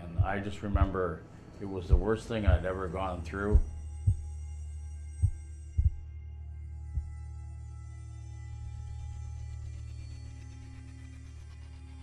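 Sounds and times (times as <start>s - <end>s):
heartbeat thumps: 0.0s - 1.0s, 1.9s - 2.8s, 3.5s - 4.4s, 5.2s - 6.1s, 7.0s - 7.2s
low drone with high tones: 0.0s - 12.0s.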